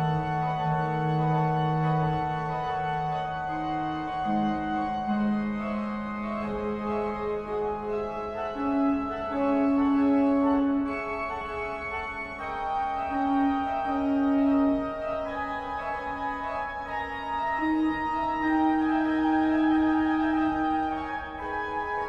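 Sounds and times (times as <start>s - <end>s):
organ playing sustained chords: 0.0s - 22.0s.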